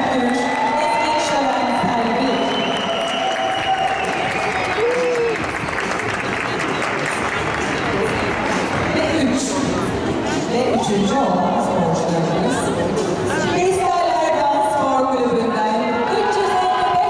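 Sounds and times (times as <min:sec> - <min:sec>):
audience applauding: 0:02.4 - 0:08.9.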